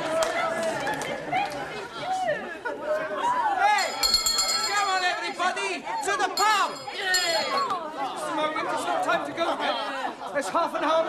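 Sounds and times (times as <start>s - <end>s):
excited group chatter: 0.0s - 11.0s.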